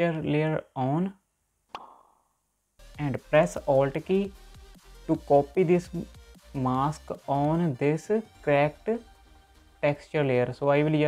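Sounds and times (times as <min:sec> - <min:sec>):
short pop: 0:01.7 - 0:02.2.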